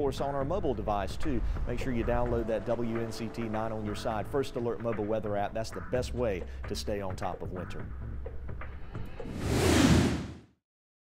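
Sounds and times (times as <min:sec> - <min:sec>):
low music bed: 0:00.0 - 0:09.3
whoosh sound effect: 0:09.2 - 0:10.4.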